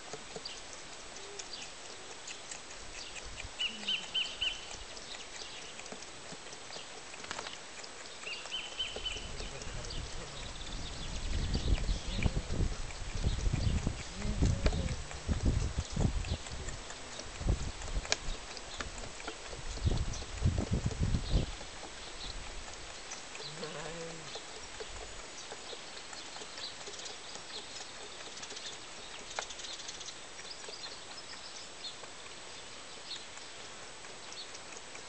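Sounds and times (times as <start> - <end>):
lamb sucking at a bottle: 0.0 - 35.0
faint high chirps: 3.6 - 5.8
low rumbling bursts: 9.1 - 16.8.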